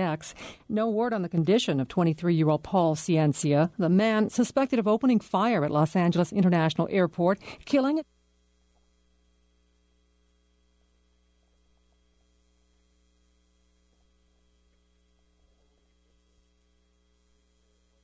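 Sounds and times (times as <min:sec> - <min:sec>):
faint electrical mains hum: 0:00.0 - 0:18.0.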